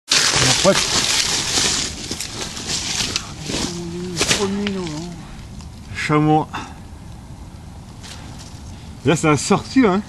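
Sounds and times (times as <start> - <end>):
rustling of dry brush: 0.1 - 6.1, 7.9 - 9.8.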